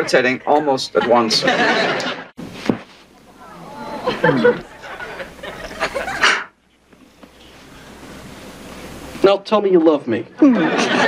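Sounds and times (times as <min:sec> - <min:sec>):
voice: 0:00.0 - 0:01.7, 0:09.2 - 0:11.0
faint background noise: 0:00.0 - 0:11.0.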